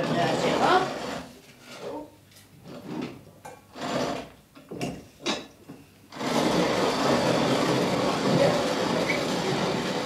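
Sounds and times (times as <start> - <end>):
hand-cranked coffee mill grinding: 0.0 - 1.3, 3.7 - 4.3, 6.1 - 10.0.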